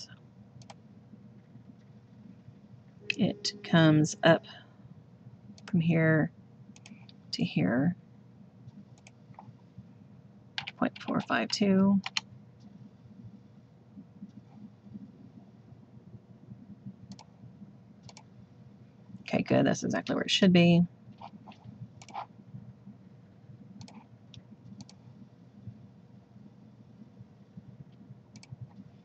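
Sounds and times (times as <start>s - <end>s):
low background rumble: 0.0s - 29.0s
low steady background hum: 0.0s - 29.0s.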